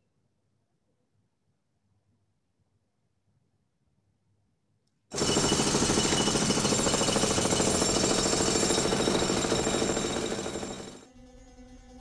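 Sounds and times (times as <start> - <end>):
jackhammer hammering concrete: 5.1 - 11.0.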